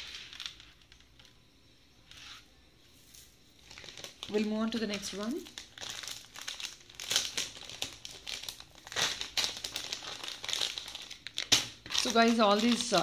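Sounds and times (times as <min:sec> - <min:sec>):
packaging crinkling: 0:03.0 - 0:13.0.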